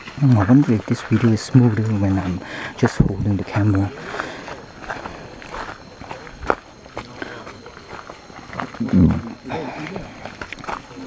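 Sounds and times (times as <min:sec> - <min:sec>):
footsteps on dirt and leaves: 0:00.0 - 0:11.0.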